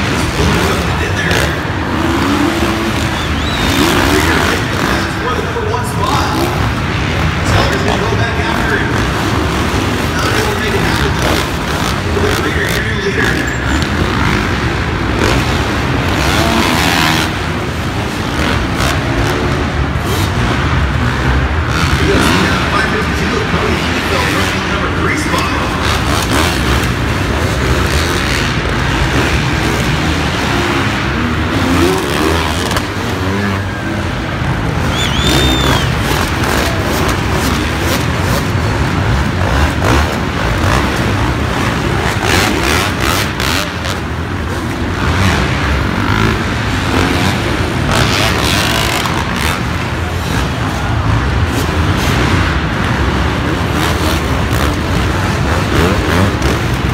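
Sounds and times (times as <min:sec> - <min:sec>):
announcer voice: 0:00.0 - 0:02.6, 0:03.8 - 0:09.3, 0:10.0 - 0:14.2, 0:21.7 - 0:26.6
motocross bike engines revving: 0:00.0 - 0:56.9.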